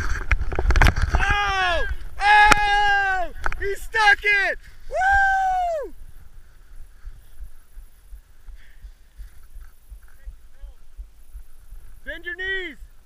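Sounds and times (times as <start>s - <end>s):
man shouting: 1.2s - 5.9s.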